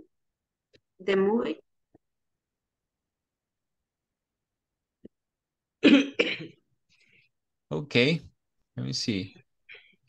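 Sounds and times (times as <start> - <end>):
person clearing throat: 5.8 - 6.6.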